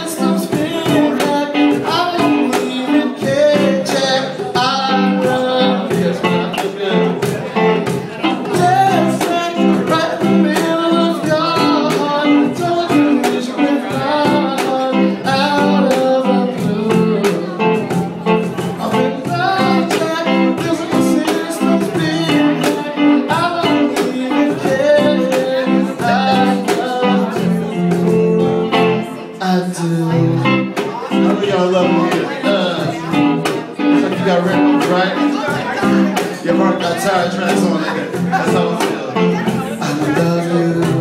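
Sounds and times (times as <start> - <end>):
electric guitar: 0.0 - 41.0
live rock band playing: 0.0 - 41.0.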